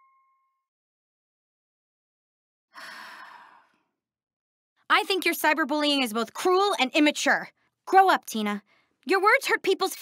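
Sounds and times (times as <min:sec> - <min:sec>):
person sighing: 0:02.8 - 0:03.7.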